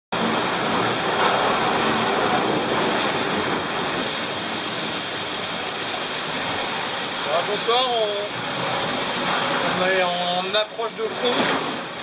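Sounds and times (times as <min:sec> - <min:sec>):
water and wind rushing against hull: 0:00.2 - 0:12.0.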